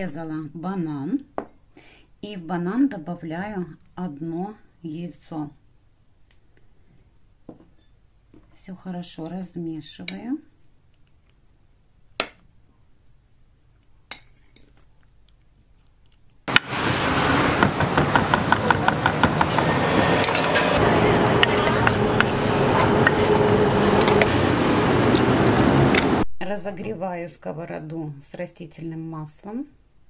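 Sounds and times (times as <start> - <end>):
steady background hum: 16.9 - 26.2.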